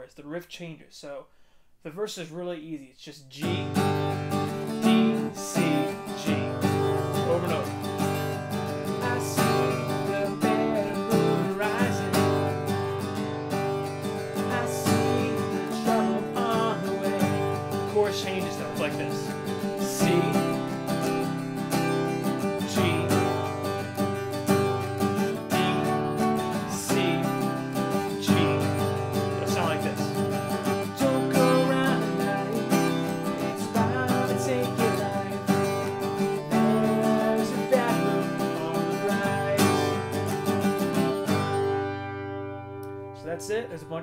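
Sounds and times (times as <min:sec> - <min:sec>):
man singing: 0:02.7 - 0:12.6, 0:14.2 - 0:21.5, 0:22.1 - 0:24.2, 0:25.1 - 0:40.6
acoustic guitar strumming: 0:03.4 - 0:44.0.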